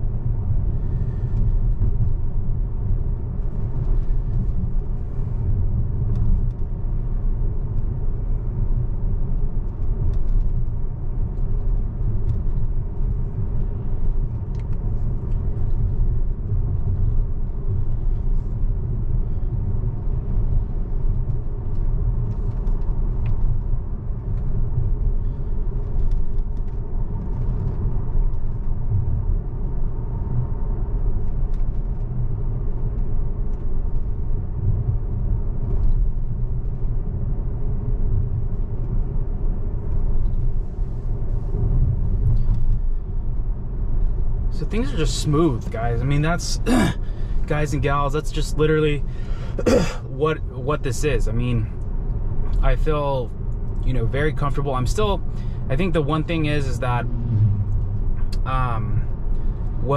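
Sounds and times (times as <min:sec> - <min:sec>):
road and tyre noise in car: 0:00.0 - 0:59.9.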